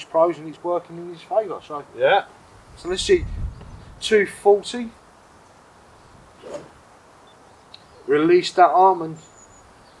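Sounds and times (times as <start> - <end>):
golf club hitting ball: 6.4 - 6.8.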